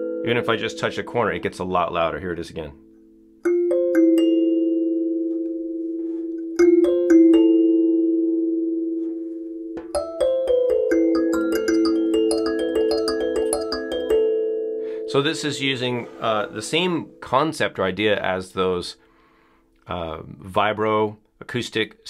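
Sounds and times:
kalimba plucked: 0:03.4 - 0:04.7, 0:09.8 - 0:14.2.

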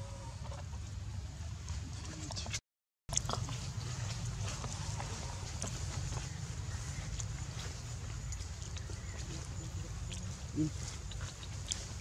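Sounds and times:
monkey grunting: 0:09.4 - 0:11.4.

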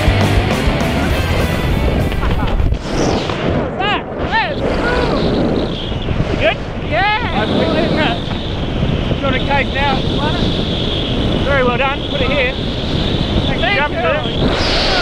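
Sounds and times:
background music: 0:00.0 - 0:02.2
wind rushing over microphone: 0:00.8 - 0:15.0.

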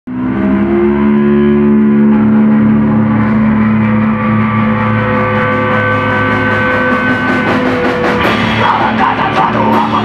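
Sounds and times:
rock band ringing chord: 0:00.3 - 0:10.0.

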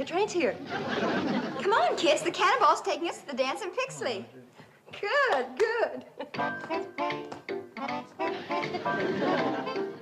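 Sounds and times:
background music of quick notes: 0:06.4 - 0:10.0.

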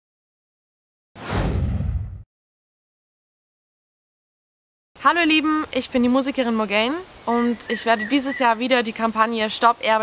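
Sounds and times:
whoosh sound effect: 0:01.2 - 0:02.2.

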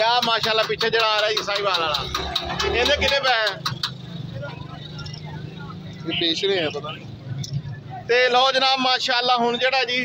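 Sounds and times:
vehicle engine humming: 0:00.0 - 0:08.4.

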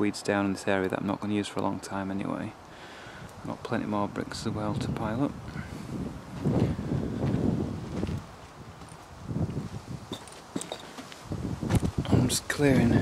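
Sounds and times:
footsteps on garden soil: 0:06.3 - 0:12.0
rustling: 0:07.8 - 0:12.0.

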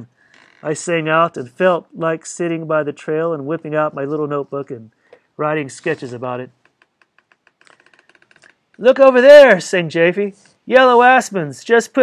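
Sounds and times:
man reading aloud: 0:00.0 - 0:06.6, 0:08.8 - 0:12.0
faint rapid clicking: 0:06.6 - 0:08.8.

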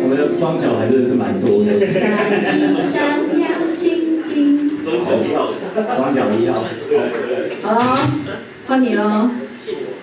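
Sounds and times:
dishes and cutlery clinking: 0:07.5 - 0:08.4.

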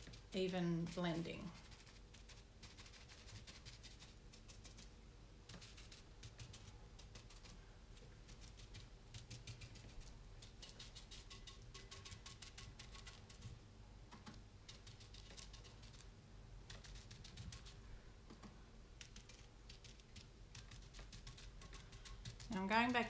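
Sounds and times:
paintbrush tapping: 0:18.3 - 0:22.8.

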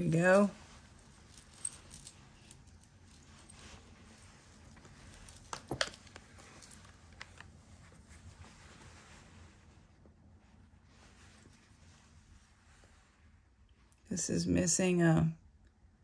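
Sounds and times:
metal chains and beads clinking: 0:00.0 - 0:07.0.

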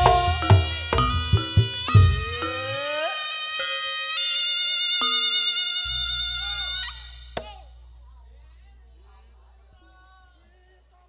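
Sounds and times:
shawm playing held notes: 0:00.0 - 0:03.2.

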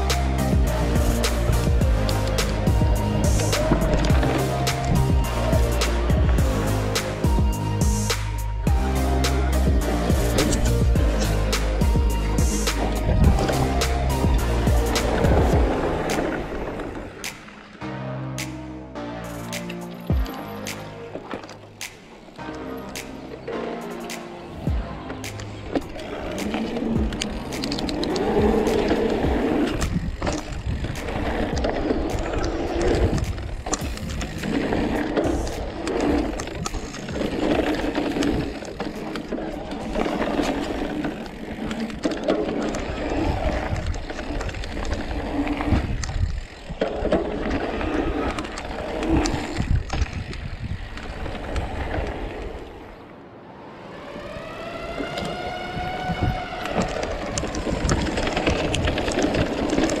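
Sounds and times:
bike tyres on dirt and gravel: 0:00.0 - 0:17.8, 0:24.4 - 1:00.0
wind on microphone: 0:26.1 - 0:38.6, 0:42.8 - 0:53.1, 0:53.8 - 1:00.0
bike rattling and knocking: 0:26.4 - 0:52.1, 0:55.9 - 1:00.0
electric bike motor whine: 0:53.6 - 0:59.8.

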